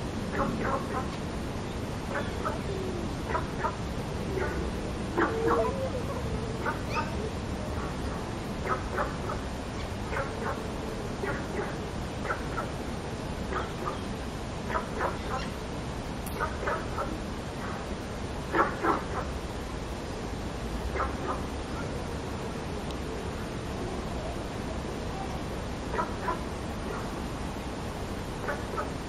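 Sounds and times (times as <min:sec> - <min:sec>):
cockatoo clucking calls: 0:02.1 - 0:10.6.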